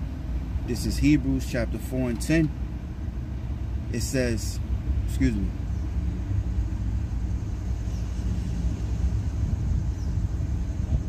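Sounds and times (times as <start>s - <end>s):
car idling: 0.0s - 11.0s.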